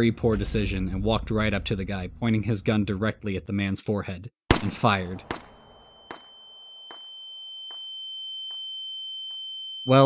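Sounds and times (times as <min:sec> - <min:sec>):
gunshot echo: 0:04.5 - 0:06.4
high-pitched ringing tone: 0:05.6 - 0:10.0.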